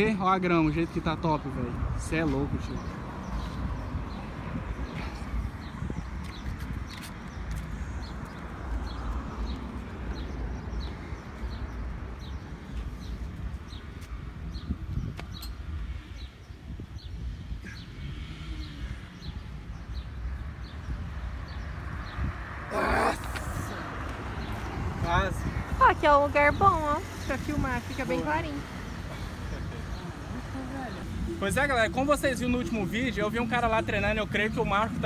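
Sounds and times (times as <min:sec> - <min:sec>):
low rumble of wind: 0:00.0 - 0:35.0.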